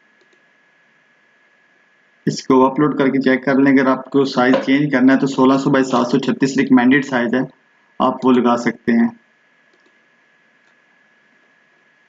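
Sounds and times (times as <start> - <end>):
faint high whine: 0.0 - 12.0
computer mouse clicks: 0.2 - 0.4, 9.7 - 10.0.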